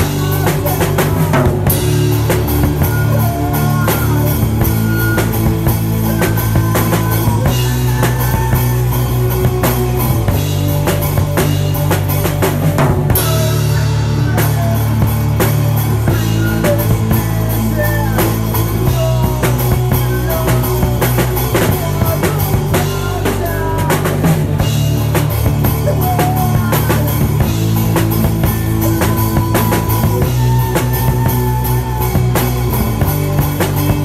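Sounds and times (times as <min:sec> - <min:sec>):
drum kit beat: 0:00.0 - 0:34.0
rock band playing loud: 0:00.0 - 0:34.0.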